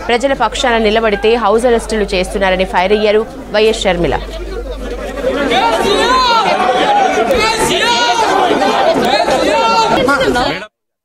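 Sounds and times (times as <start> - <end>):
crowd talking: 0.0 - 10.7.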